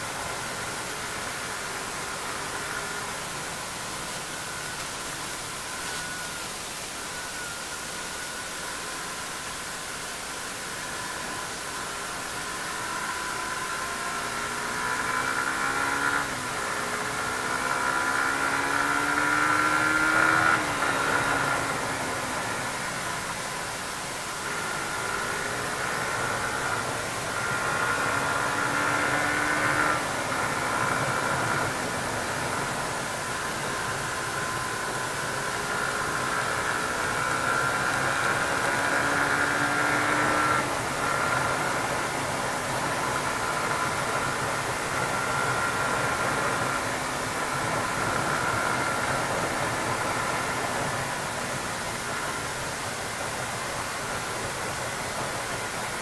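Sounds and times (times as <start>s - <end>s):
motorcycle engine revving: 12.2s - 56.0s.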